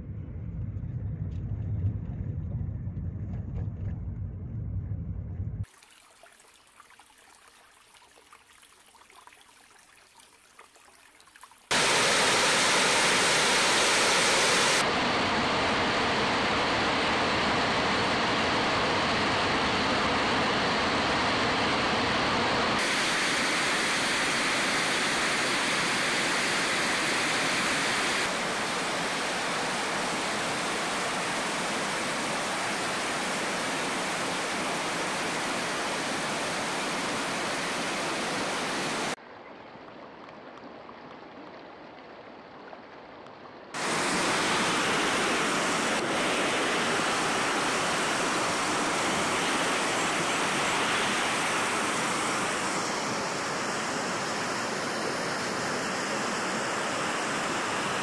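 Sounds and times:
water rushing over rocks: 11.7 - 14.9, 22.8 - 39.2, 43.8 - 58.0.

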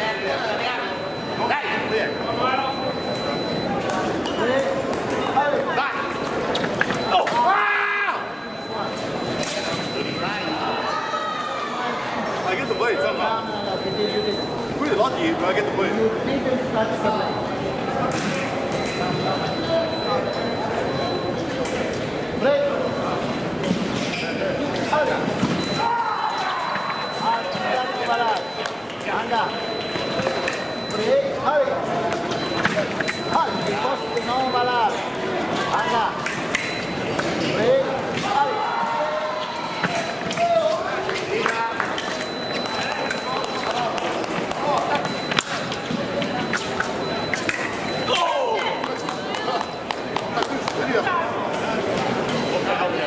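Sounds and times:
many voices talking: 0.0 - 53.0
fencing blades clashing: 36.2 - 37.6, 46.5 - 48.2.

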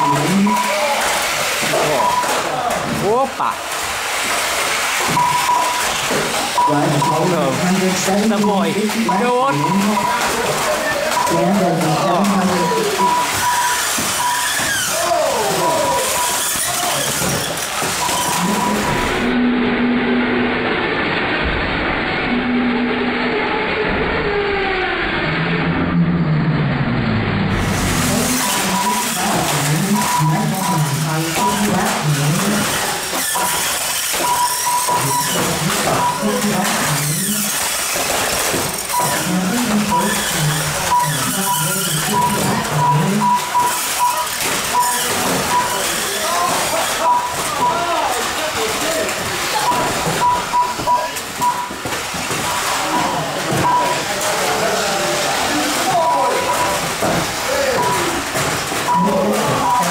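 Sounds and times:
short high beep: 0.0 - 0.8, 5.1 - 5.9, 8.3 - 10.3, 12.4 - 14.6, 28.3 - 31.7, 33.4 - 36.7, 47.0 - 47.8, 49.6 - 51.7
toy car motors running: 0.0 - 2.5, 3.5 - 19.3, 27.5 - 59.9
voices: 0.0 - 3.7, 5.2 - 19.4, 27.9 - 37.8, 38.6 - 51.8, 52.5 - 59.9
toy cars knocking together: 13.0 - 18.4, 31.3 - 41.4.

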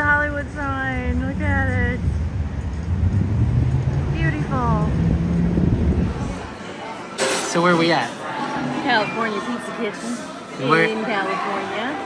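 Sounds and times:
wind on microphone: 0.0 - 6.5
street traffic rumble: 0.0 - 6.7.

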